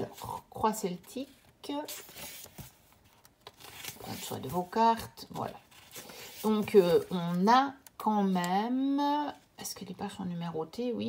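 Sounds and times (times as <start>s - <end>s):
paper pages turning: 0.0s - 7.5s.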